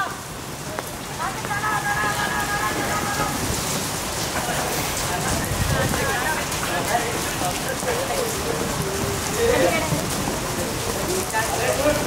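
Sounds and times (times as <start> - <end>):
steady rain falling: 0.0 - 12.0
voices calling out: 0.0 - 12.0.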